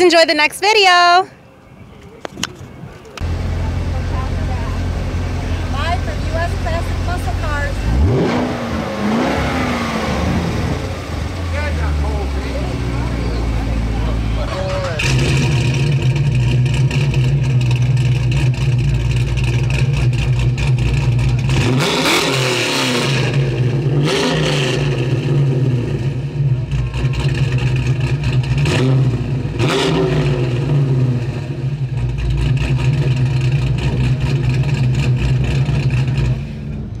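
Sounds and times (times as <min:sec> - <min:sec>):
car engine revving: 0:03.2 - 0:37.0.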